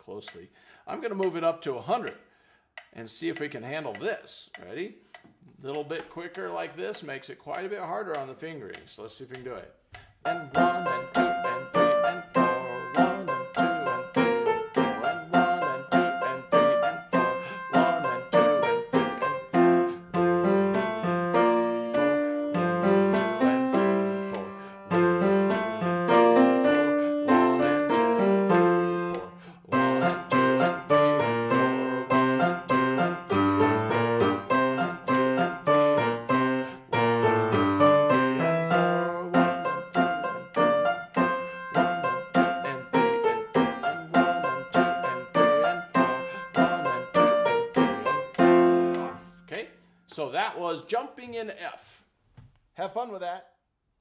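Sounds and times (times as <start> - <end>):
metronome clicking: 0.2 - 0.5, 1.2 - 49.6
grand piano playing: 10.2 - 49.5.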